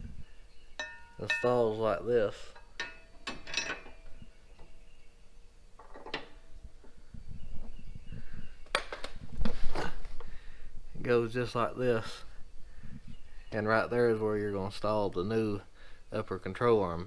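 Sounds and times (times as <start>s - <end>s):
metal clinks and knocks: 0.8s - 4.7s.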